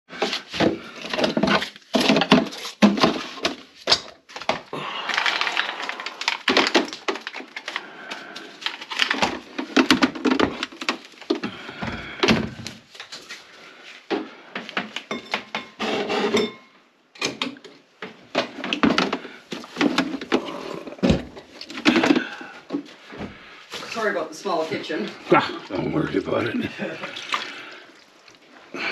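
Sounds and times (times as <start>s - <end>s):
knocks and clunks of objects moved: 0.1s - 27.8s
person talking: 23.8s - 27.2s.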